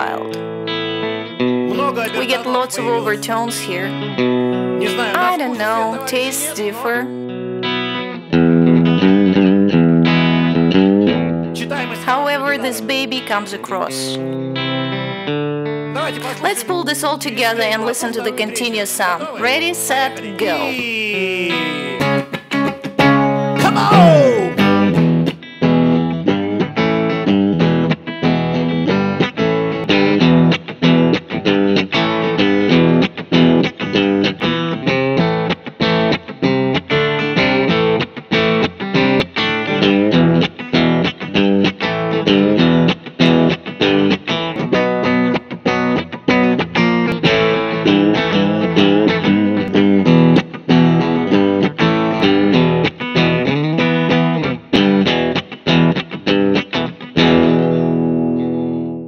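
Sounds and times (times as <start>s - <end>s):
electric guitar riff: 0.0s - 59.0s.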